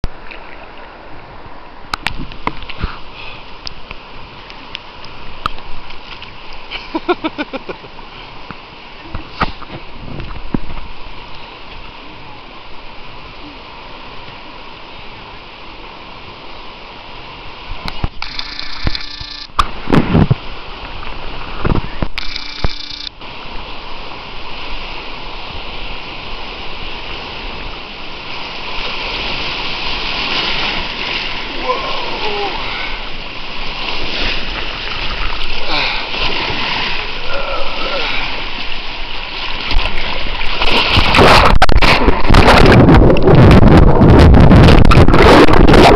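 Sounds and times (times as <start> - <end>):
river water sloshing and splashing: 0.0 - 45.9.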